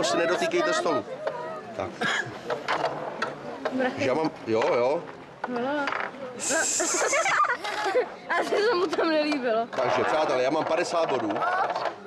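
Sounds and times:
people and children talking: 0:00.0 - 0:04.4, 0:05.4 - 0:12.0
high hiss: 0:06.4 - 0:07.4.

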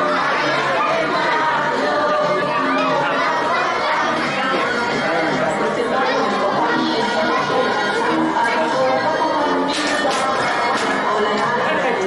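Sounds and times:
children and adults chattering: 0:00.0 - 0:12.0
dance music: 0:00.0 - 0:12.0.

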